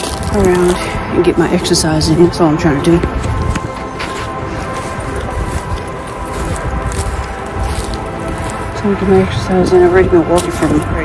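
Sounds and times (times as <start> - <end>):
soft sustained music: 0.0 - 11.0
wind buffeting microphone: 0.0 - 11.0.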